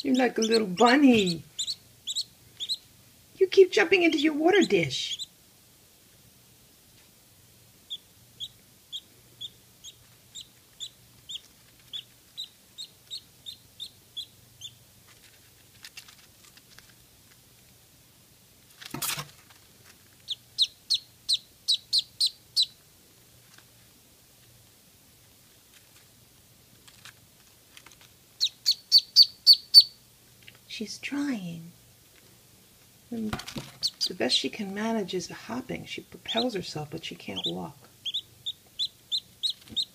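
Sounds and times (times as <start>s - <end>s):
duckling peeping: 0.0s - 2.9s, 3.6s - 5.4s, 7.8s - 14.9s, 20.2s - 22.8s, 28.4s - 30.0s, 33.8s - 34.4s, 36.0s - 39.9s.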